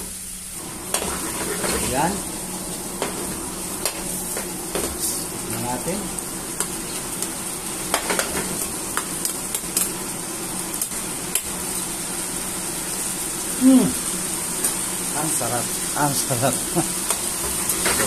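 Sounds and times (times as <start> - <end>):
food sizzling in a pan: 0.0 - 18.0
metal utensils scraping a pan: 0.9 - 2.0
person humming hmm: 13.6 - 14.0.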